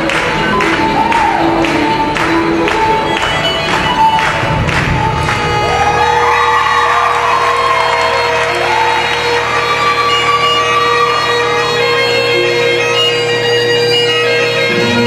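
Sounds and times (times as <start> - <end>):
beat-driven music: 0.0 - 8.7, 10.2 - 15.0
bagpipe drones and melody: 0.0 - 15.0.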